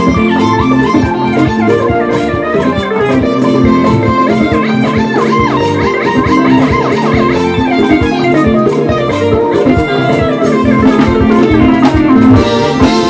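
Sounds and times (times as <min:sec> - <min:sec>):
bass line: 0:00.0 - 0:13.0
drums: 0:00.0 - 0:13.0
electric guitar melody: 0:00.0 - 0:13.0.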